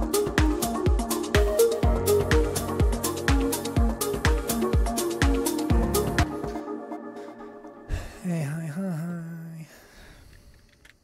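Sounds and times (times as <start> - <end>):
man humming: 7.9 - 9.9.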